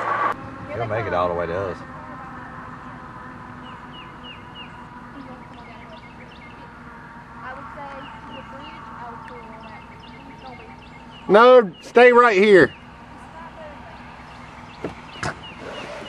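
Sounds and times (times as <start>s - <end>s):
steady low hum: 0.0s - 16.0s
small birds chirping: 1.7s - 16.0s.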